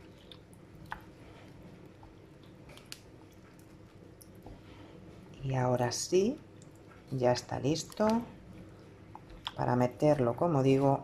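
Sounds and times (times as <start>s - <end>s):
spoon stirring wet food: 0.0s - 11.0s.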